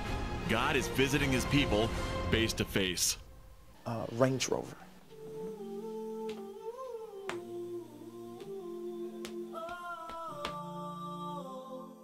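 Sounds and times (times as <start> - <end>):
choir-like wordless humming: 5.0 - 12.0.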